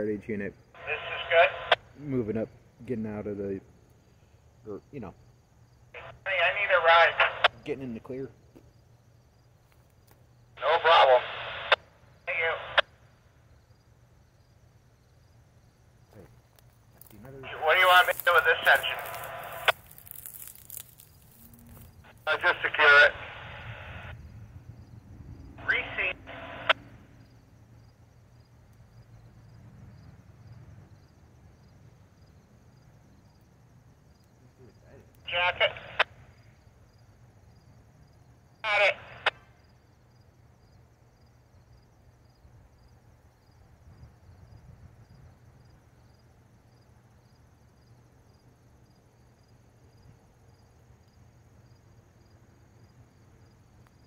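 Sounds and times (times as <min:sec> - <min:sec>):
radio voice transmissions: 0:00.8 - 0:03.5, 0:06.0 - 0:08.3, 0:10.6 - 0:12.9, 0:17.2 - 0:19.8, 0:22.0 - 0:24.2, 0:25.6 - 0:26.8, 0:34.7 - 0:36.1, 0:38.6 - 0:39.4.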